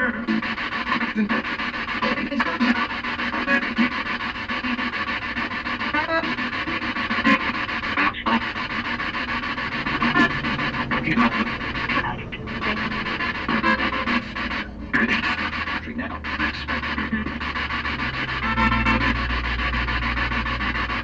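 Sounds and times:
radio static sweeping: 0.0s - 21.0s.

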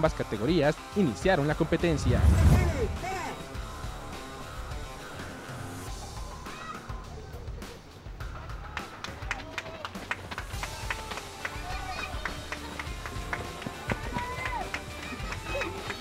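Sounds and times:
background music: 0.0s - 16.0s
runners' footsteps on dirt: 11.8s - 16.0s.

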